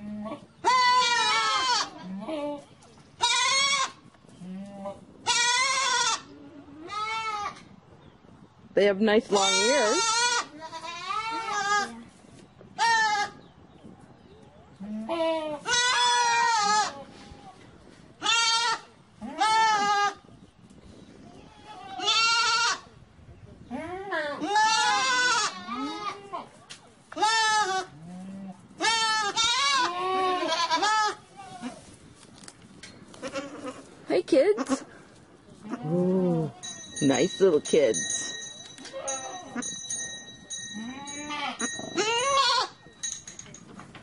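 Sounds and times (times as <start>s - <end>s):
goats bleating: 0.0s - 2.6s, 3.2s - 7.5s, 9.3s - 12.0s, 18.2s - 20.2s, 21.4s - 22.9s, 23.7s - 26.5s, 27.2s - 31.8s, 33.2s - 33.9s, 40.8s - 42.8s.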